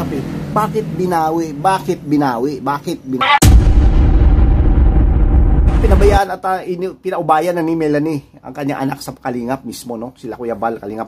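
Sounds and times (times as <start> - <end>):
loud boom: 3.2 - 6.2
deep rumble: 3.4 - 6.2.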